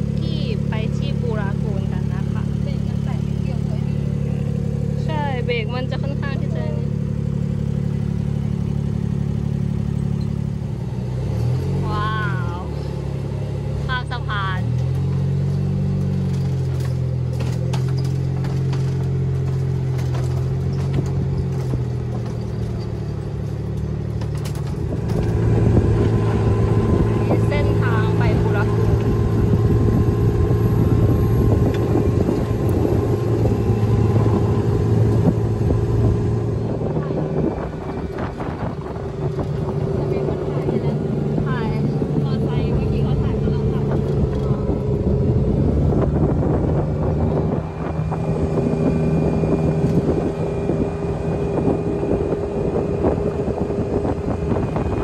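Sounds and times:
buggy engine humming: 0:00.0 - 0:55.0.

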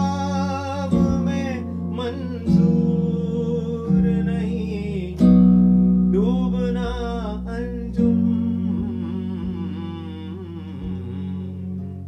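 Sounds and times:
man humming melody: 0:00.0 - 0:12.0
electronic keyboard drone: 0:06.1 - 0:12.0.

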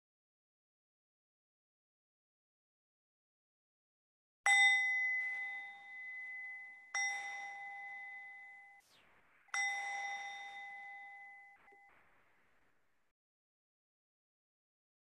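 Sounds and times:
small bell ringing: 0:04.5 - 0:08.8, 0:09.6 - 0:11.9.

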